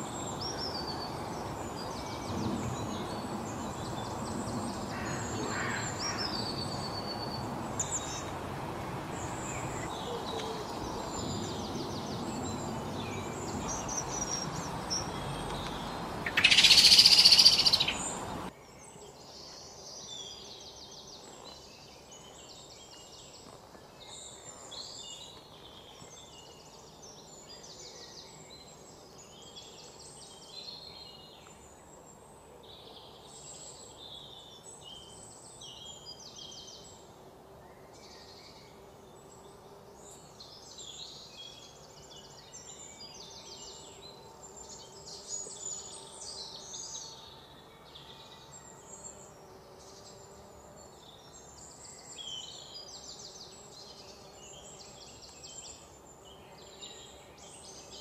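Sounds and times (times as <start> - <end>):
small birds chirping: 0.0 - 37.0, 37.7 - 58.0.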